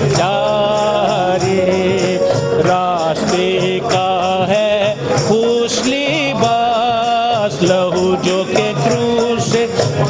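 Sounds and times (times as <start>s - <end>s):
dholak drum beat: 0.0s - 10.0s
person singing: 0.0s - 10.0s.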